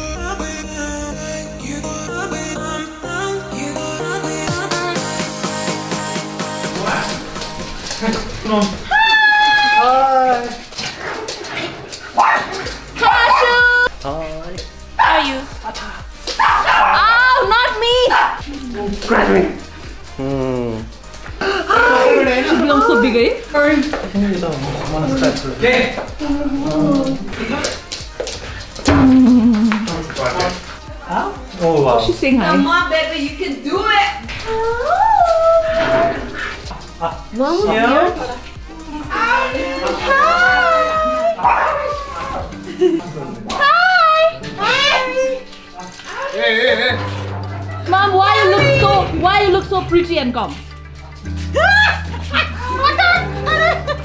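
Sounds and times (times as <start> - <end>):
music with steady beat: 0.0 - 9.8, 10.5 - 54.0
people's voices: 15.0 - 50.8.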